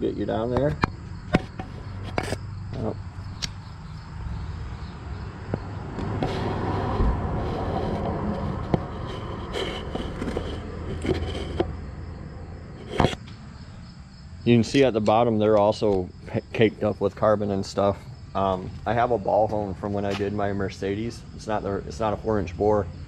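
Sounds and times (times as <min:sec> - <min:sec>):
crickets chirping: 0:00.0 - 0:23.0
rubbing and scraping: 0:00.4 - 0:04.5, 0:05.5 - 0:13.2
camera knocking against engine block: 0:00.6 - 0:02.4.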